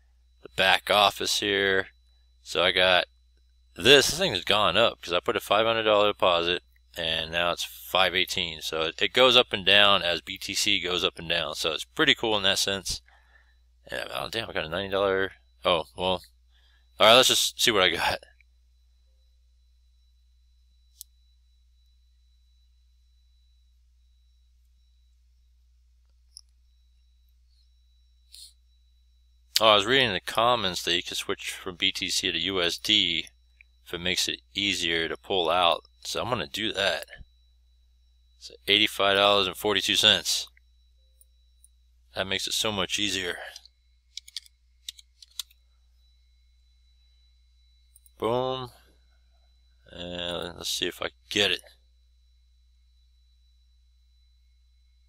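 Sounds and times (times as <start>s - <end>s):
faint steady low hum: 0.0s - 55.0s
computer mouse click: 44.1s - 45.6s.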